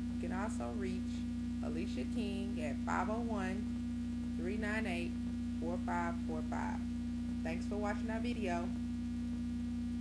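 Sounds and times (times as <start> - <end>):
electrical mains hum: 0.0 - 10.0
woman narrating: 0.2 - 3.8, 4.4 - 8.8.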